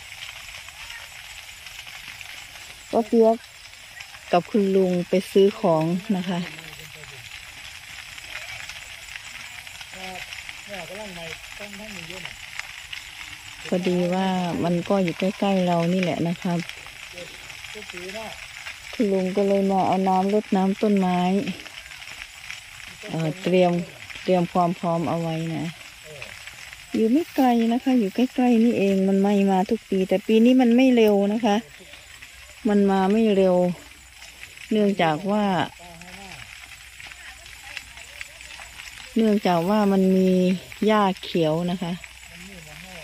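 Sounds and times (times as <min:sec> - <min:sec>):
faint high outdoor hiss: 0:00.0 - 0:20.5
distant brush fire crackling: 0:00.0 - 0:43.0
woman speaking: 0:02.9 - 0:03.4, 0:04.2 - 0:06.5, 0:13.7 - 0:16.7, 0:19.0 - 0:21.7, 0:23.1 - 0:25.8, 0:26.9 - 0:31.7, 0:32.6 - 0:33.8, 0:34.7 - 0:35.8, 0:37.1 - 0:42.0.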